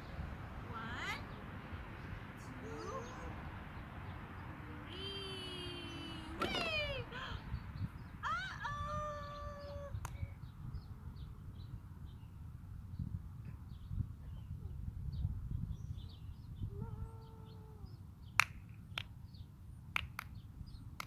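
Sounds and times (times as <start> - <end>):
child calling and squealing: 5.0 - 7.4, 8.2 - 10.0.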